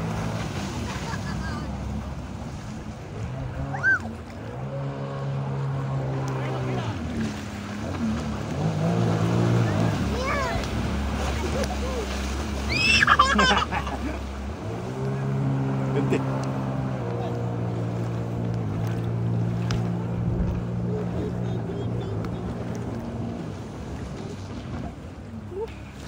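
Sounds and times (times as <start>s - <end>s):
outboard motor running: 0.0s - 26.0s
rushing water: 0.0s - 26.0s
wind: 0.0s - 26.0s.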